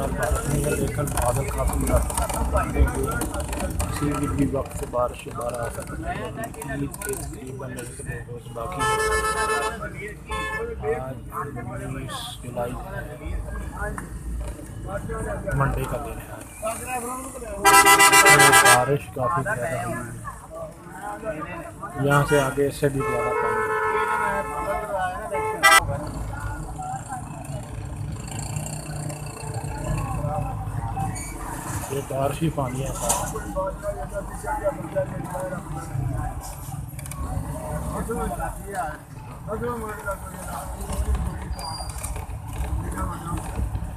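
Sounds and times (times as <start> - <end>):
low rumble of traffic: 0.0 - 43.9
vehicle horn: 8.8 - 10.8, 17.6 - 18.9, 23.0 - 25.8.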